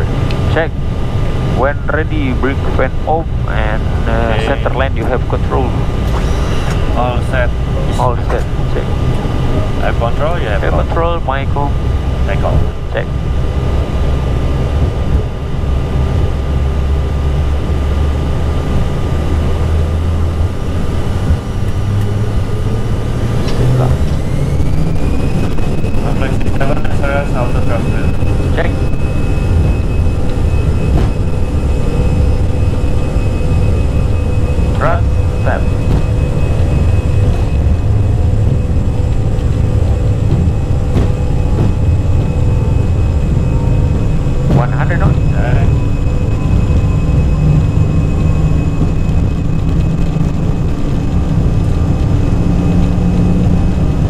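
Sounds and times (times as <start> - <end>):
jet engine whine rising: 0.0 - 54.0
jet engines rumbling: 0.0 - 54.0.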